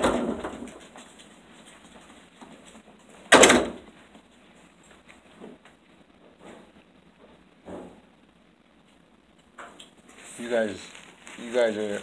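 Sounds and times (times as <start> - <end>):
cloth rubbing over microphone: 10.0 - 12.0.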